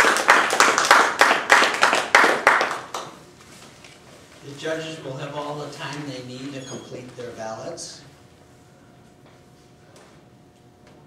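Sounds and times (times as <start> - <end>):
audience applause: 0.0 - 3.1
hands clapping close by: 0.0 - 3.2.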